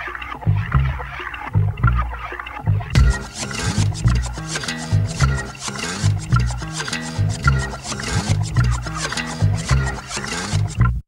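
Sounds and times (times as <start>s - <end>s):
instrumental pop-rock music: 2.9s - 10.8s.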